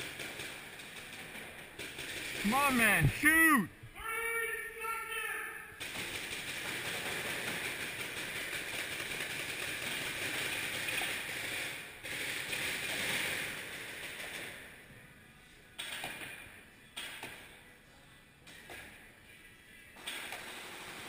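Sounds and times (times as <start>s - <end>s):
paintball markers firing rapidly: 0.0s - 3.0s, 5.8s - 14.7s, 20.0s - 21.0s.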